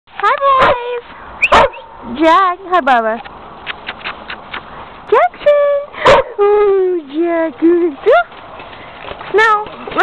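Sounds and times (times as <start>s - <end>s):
dog barking: 1.5s - 1.9s, 6.0s - 6.4s.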